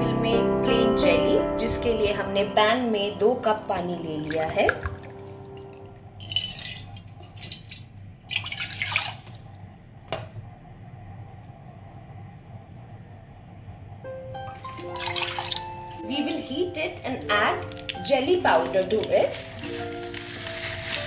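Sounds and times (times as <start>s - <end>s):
soft background music: 0.0s - 7.0s, 13.9s - 21.0s
water pouring into cup: 4.3s - 5.4s, 6.2s - 9.5s, 14.5s - 16.0s.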